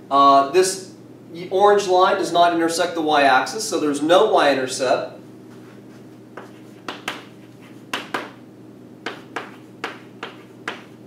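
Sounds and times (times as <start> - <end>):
chalk strokes on a chalkboard: 5.5 - 8.3, 9.1 - 11.0.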